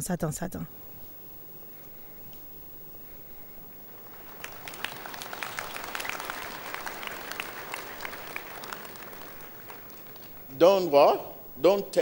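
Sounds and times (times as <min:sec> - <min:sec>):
crowd applauding: 0:03.9 - 0:10.6.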